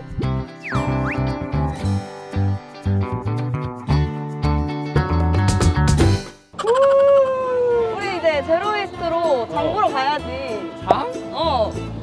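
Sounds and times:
strummed guitar music: 0.0s - 6.5s.

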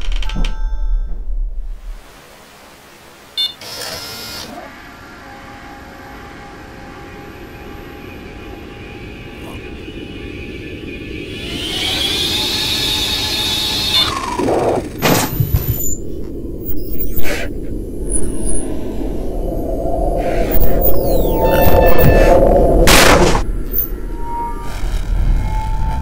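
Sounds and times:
eerie ambient drone: 4.4s - 26.0s
hissing rise: 16.0s - 26.0s.

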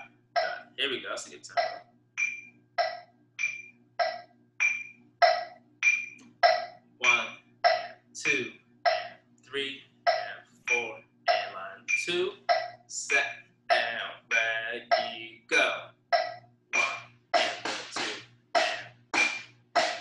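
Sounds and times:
metronome clicking: 1.5s - 9.1s, 10.1s - 13.4s, 14.3s - 15.2s, 16.2s - 20.0s.

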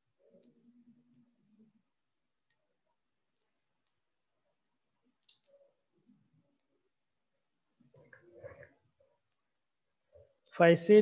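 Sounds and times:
faint low noises: 0.0s - 11.0s.

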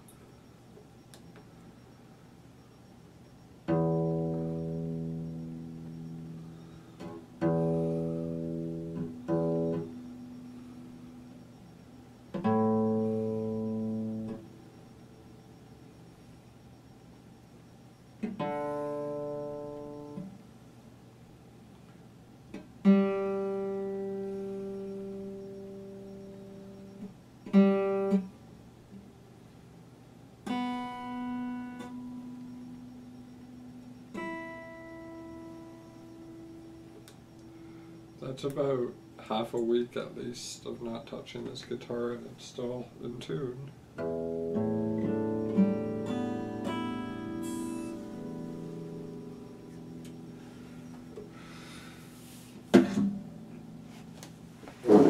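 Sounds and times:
acoustic guitar strings plucked: 3.7s - 6.2s, 7.0s - 10.4s, 52.6s - 55.0s.

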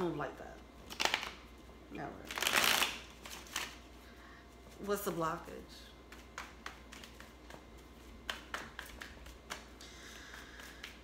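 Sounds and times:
cards being shuffled: 2.3s - 3.8s, 6.1s - 11.0s.

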